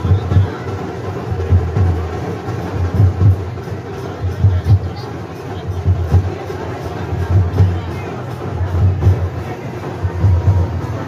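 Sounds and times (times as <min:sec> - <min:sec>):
drums beating deep beats: 0:00.0 - 0:11.0.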